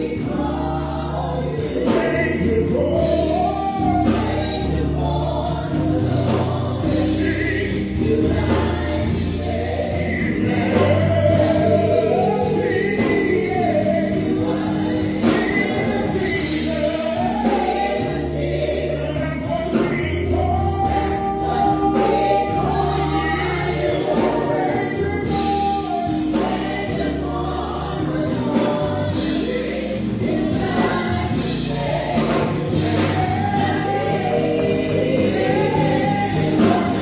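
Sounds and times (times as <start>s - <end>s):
choir singing in harmony: 0.0s - 37.0s
keyboard: 0.0s - 37.0s.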